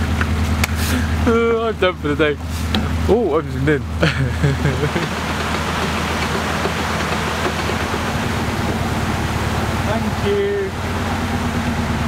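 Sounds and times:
diesel engine idling: 0:00.0 - 0:12.0
water rushing through lock gates: 0:04.6 - 0:10.2.

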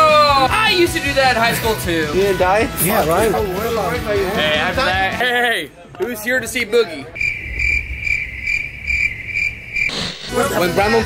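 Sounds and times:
crickets chirping: 0:07.1 - 0:10.6.

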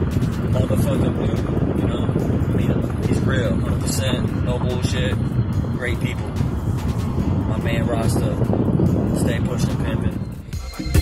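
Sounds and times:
road rumble in car: 0:00.0 - 0:10.5
reggae music with bass line: 0:00.0 - 0:11.0.

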